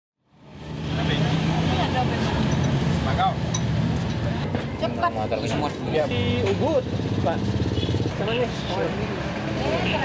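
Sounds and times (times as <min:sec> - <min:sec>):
low traffic rumble: 0:00.2 - 0:10.0
voices talking: 0:00.8 - 0:10.0.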